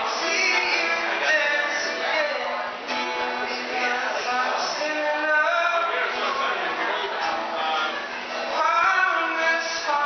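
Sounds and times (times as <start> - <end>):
acoustic guitar: 0.0 - 10.0
man singing into microphone: 0.0 - 10.0.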